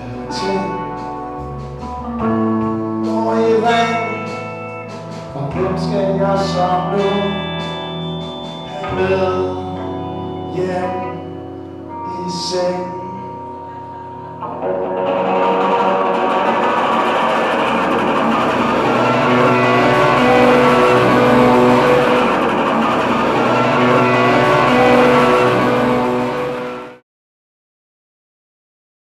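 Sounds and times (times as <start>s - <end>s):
electric guitar playing: 0.0s - 27.0s.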